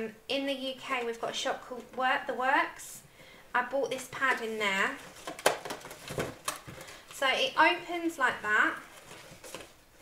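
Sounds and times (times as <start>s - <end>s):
cardstock rustling and tapping: 4.0s - 7.2s, 8.9s - 9.8s.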